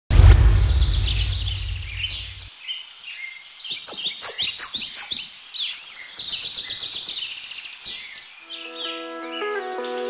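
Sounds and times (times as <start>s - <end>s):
deep boom: 0.1s - 2.5s
birds chirping: 0.5s - 10.0s.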